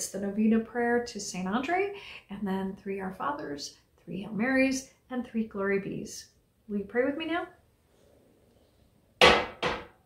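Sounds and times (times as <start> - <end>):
mug knocking on glass table: 9.2 - 10.0.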